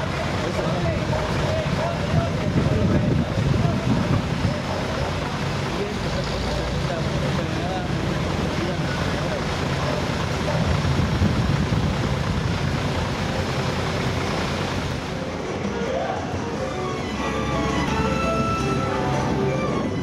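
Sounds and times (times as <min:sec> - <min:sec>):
faint indistinct voices: 0:00.0 - 0:11.7
outdoor background rumble: 0:00.0 - 0:15.7.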